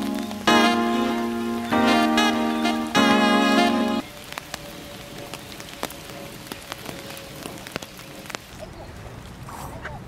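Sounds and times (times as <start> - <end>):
light rain on water: 0.0 - 10.0
plinks of raindrops: 0.0 - 10.0.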